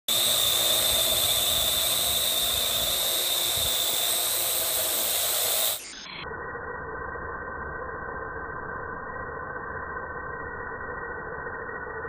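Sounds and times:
drone propellers whining: 0.0 - 12.0.

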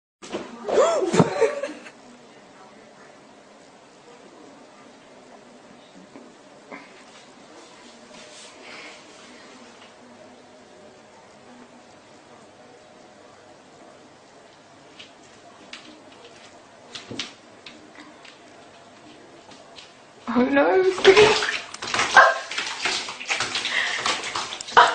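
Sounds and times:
knocks and scrabbling against tub: 20.9 - 24.9.

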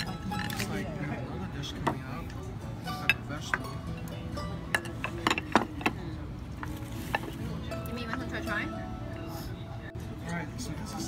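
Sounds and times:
plates and utensils clinking: 0.0 - 1.0, 1.6 - 9.3
background music: 0.0 - 11.0.

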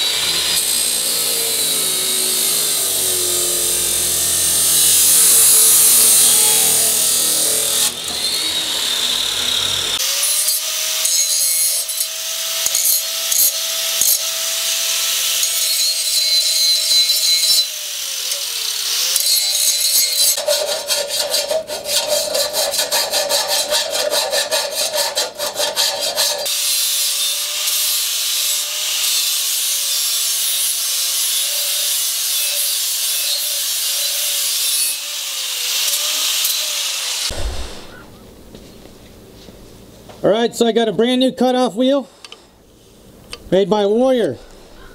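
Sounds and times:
angle grinder grinding steel: 0.0 - 38.0
chop saw cutting steel: 0.0 - 38.0.

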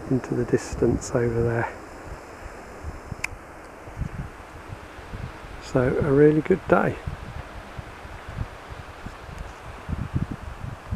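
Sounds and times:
faint outdoor hiss: 0.0 - 10.9
wind buffeting microphone: 0.0 - 10.9.

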